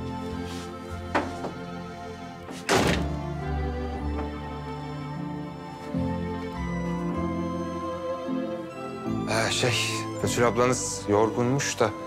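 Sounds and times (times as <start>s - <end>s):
soft background music: 0.0s - 12.0s
front door shutting: 2.4s - 3.4s.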